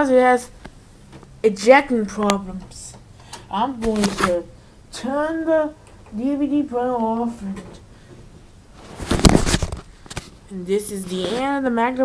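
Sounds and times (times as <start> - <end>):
camera handling rustling: 8.8 - 10.4.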